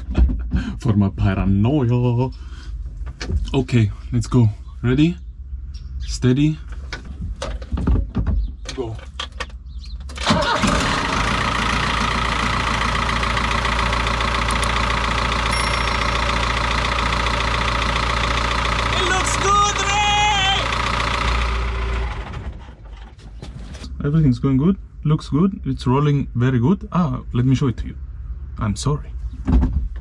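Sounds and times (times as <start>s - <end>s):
diesel engine starting and idling: 10.0s - 23.4s.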